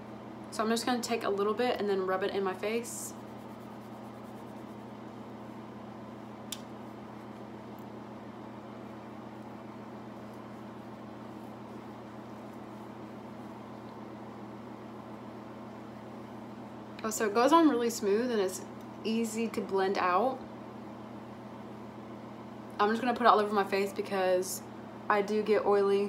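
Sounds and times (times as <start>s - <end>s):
room noise hum and hiss: 0.0s - 26.0s.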